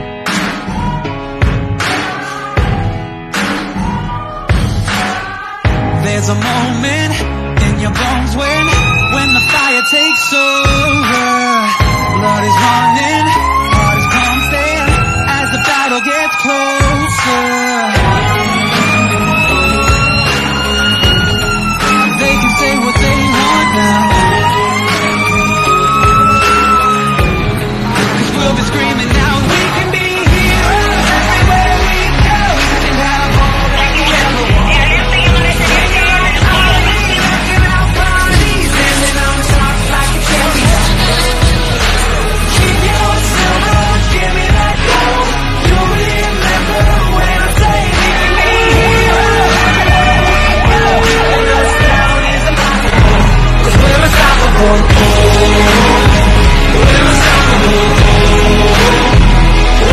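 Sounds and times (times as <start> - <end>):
loud song with a beat: 0.0 - 59.9
fire engine siren wailing: 8.3 - 55.0.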